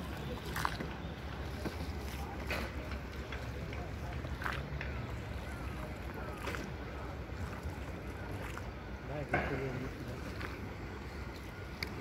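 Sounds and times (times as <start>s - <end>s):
boat engine low rumble: 0.0s - 12.0s
faint distant voices: 0.0s - 12.0s.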